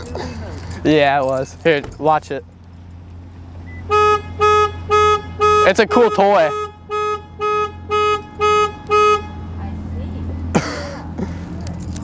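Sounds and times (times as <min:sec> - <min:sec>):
car alarm horn honking: 0:03.6 - 0:09.6.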